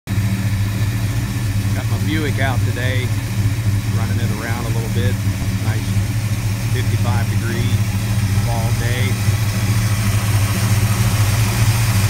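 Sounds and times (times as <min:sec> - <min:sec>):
car engine idling: 0:00.1 - 0:12.0
man talking: 0:01.7 - 0:03.2, 0:03.8 - 0:09.2.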